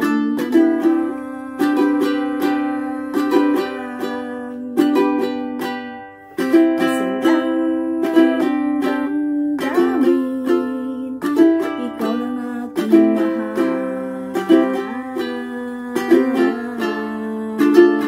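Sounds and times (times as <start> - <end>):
ukulele strumming chords: 0.0 - 18.0.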